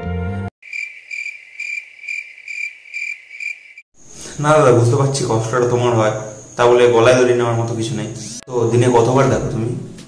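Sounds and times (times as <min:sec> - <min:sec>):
cricket chirping: 0:00.6 - 0:08.4
sad music: 0:07.8 - 0:10.0.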